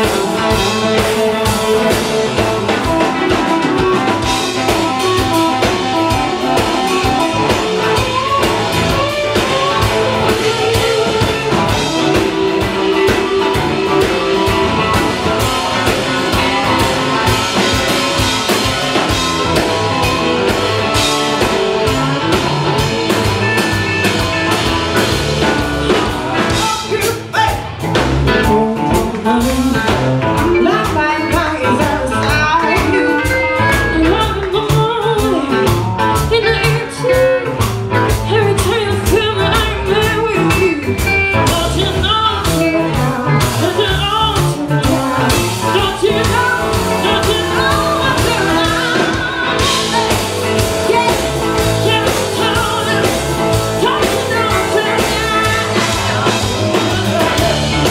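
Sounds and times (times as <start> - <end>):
person singing: 0.0 - 27.8, 28.4 - 57.9
drum kit: 0.0 - 57.9
electric guitar: 0.0 - 57.9
live blues band playing: 0.0 - 57.9.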